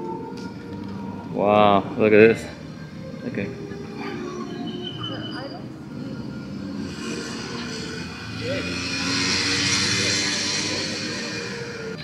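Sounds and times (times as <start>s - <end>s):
vehicle passing: 2.5s - 12.0s.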